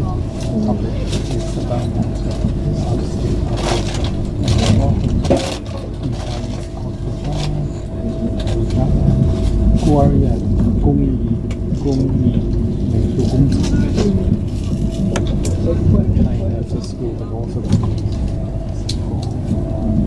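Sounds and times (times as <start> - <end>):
faint whine: 0.0 - 20.0
passenger chatter: 0.0 - 20.0
train rolling rumble: 0.0 - 20.0.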